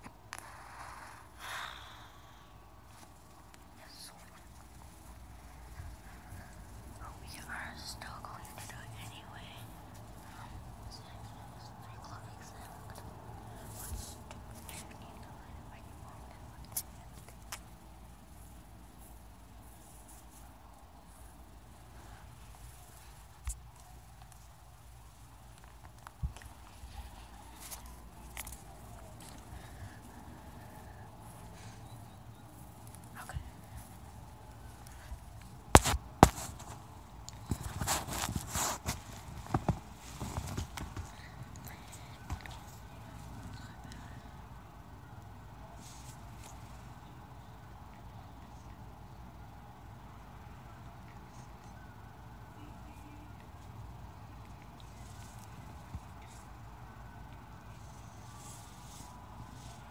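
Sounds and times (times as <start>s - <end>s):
faint low hum: 0.0s - 59.9s
person whispering faintly: 3.2s - 17.6s, 26.7s - 34.0s, 40.2s - 44.6s.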